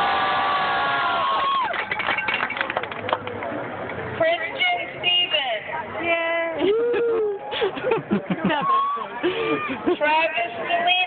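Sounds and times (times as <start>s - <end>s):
crowd cheering: 0.0s - 3.4s, 6.6s - 10.0s
scattered clapping: 1.4s - 4.0s
high held whoop: 6.6s - 7.4s, 8.6s - 9.7s.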